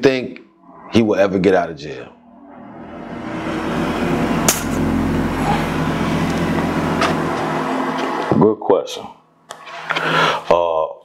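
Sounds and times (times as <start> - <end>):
engine running: 1.9 - 8.4.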